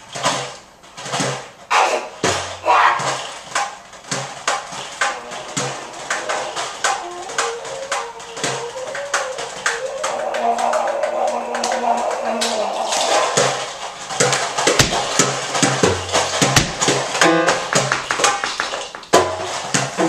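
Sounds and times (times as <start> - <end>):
sharp percussion strikes: 14.2 - 19.6.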